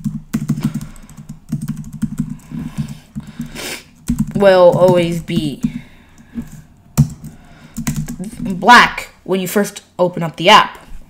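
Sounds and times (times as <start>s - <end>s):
typing on computer keyboard: 0.0s - 5.8s, 6.4s - 8.2s.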